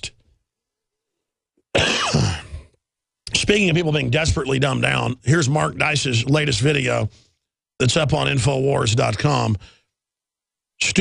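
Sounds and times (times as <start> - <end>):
man clearing his throat: 1.7 - 2.8.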